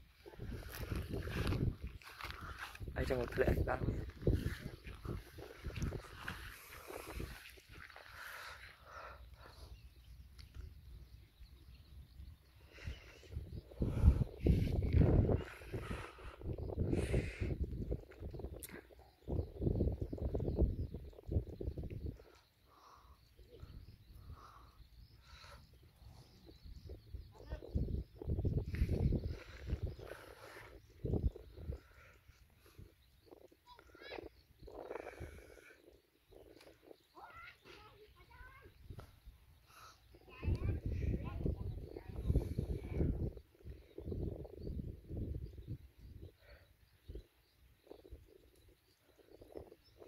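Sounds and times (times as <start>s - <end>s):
wind buffeting microphone: 0.0s - 50.0s
distant high-pitched voices calling: 31.4s - 42.7s.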